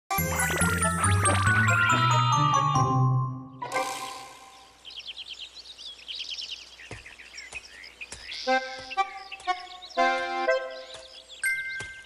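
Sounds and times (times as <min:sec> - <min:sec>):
small birds chirping: 0:00.1 - 0:12.0
chiming mallet percussion jingle: 0:11.4 - 0:12.0.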